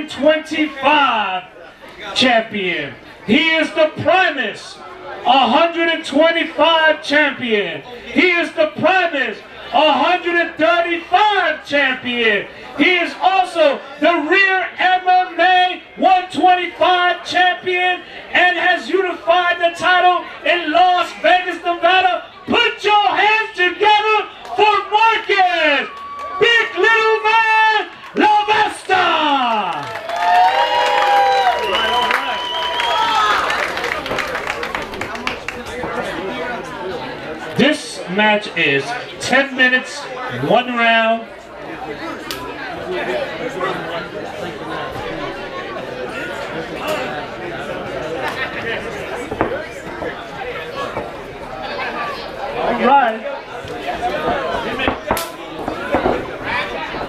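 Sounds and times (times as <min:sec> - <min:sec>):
spectators chattering: 0:00.0 - 0:57.0
crowd cheering: 0:18.0 - 0:57.0.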